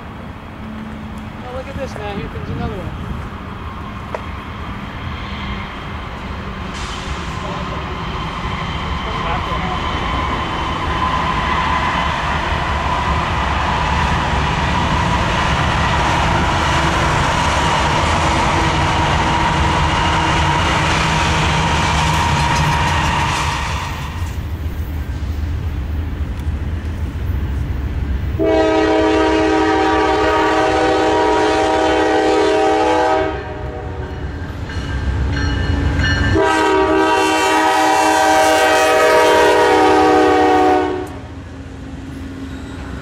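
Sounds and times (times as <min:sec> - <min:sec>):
train rumble: 0:00.0 - 0:43.0
train whine: 0:00.0 - 0:43.0.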